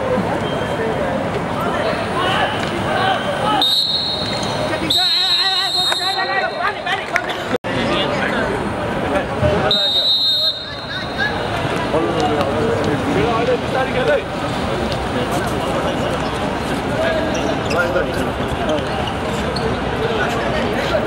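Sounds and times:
players shouting: 0:01.7 - 0:07.2
referee's whistle blasts: 0:03.4 - 0:06.8, 0:09.7 - 0:11.2.

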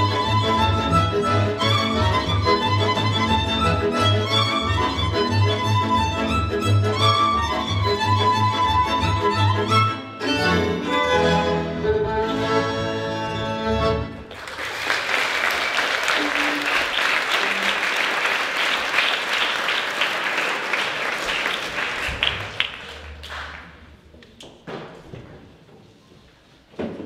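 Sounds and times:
fiddle and accordion folk music: 0:00.0 - 0:14.3, 0:16.1 - 0:16.9
audience clapping: 0:14.2 - 0:24.6.

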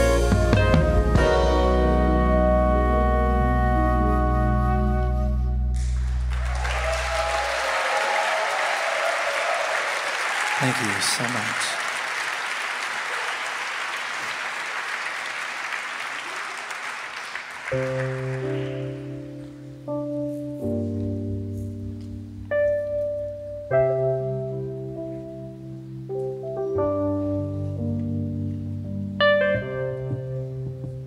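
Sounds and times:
electric piano chords: 0:00.0 - 0:06.4, 0:17.7 - 0:31.0
audience applause and cheering: 0:05.8 - 0:19.4.

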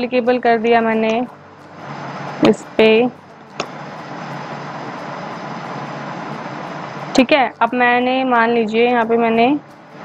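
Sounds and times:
room and microphone hiss: 0:00.0 - 0:10.0.

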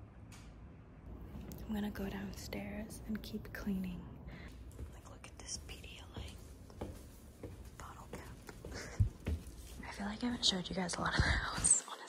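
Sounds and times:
faint footsteps: 0:01.1 - 0:11.8.

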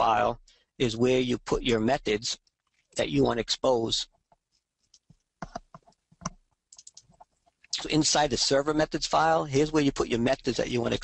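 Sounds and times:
computer keys and mouse clicking: 0:04.2 - 0:07.8.

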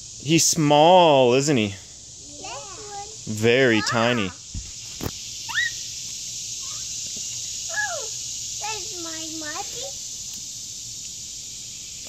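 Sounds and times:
steady high hiss: 0:00.0 - 0:12.0
child's high-pitched vocal sound: 0:07.7 - 0:10.0.

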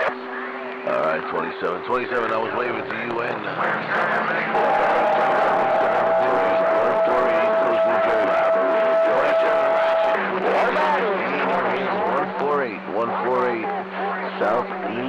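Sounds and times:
garbled radio voices: 0:00.0 - 0:15.0
low hum: 0:00.0 - 0:15.0.

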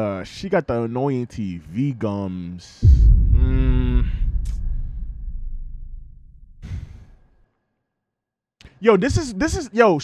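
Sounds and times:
low sound: 0:02.8 - 0:06.8
person exhaling: 0:03.3 - 0:04.8, 0:06.6 - 0:07.2.

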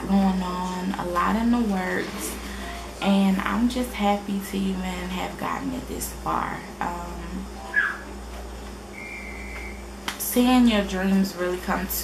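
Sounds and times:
low room hum: 0:00.0 - 0:12.0
faint high-pitched tone: 0:09.0 - 0:09.8.

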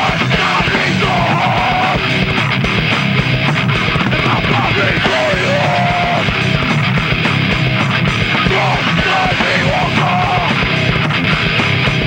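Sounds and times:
distorted electric guitar: 0:00.0 - 0:12.0
person screaming vocals: 0:08.5 - 0:10.5.

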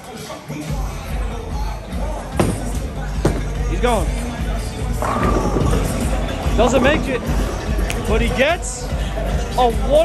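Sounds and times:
music: 0:00.0 - 0:10.0
bowling alley rumble: 0:04.6 - 0:08.0
bowling ball rolling: 0:04.8 - 0:08.0.

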